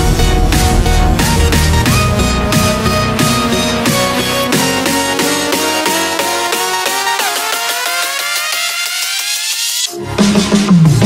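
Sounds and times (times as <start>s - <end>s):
electronic dance beat: 0.0s - 11.0s.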